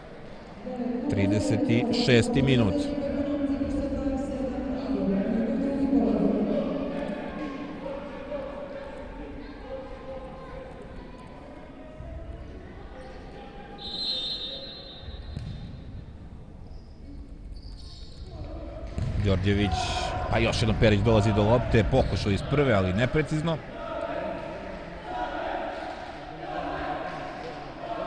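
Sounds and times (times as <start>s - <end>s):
voices echoing in hall: 0.0s - 28.0s
referee's whistle blast: 13.8s - 15.4s.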